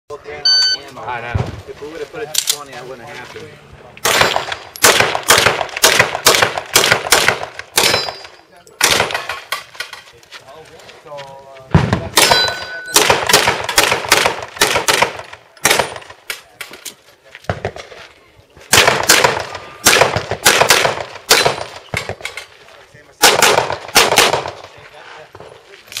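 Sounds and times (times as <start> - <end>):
handgun shots: 18.7 - 22.2.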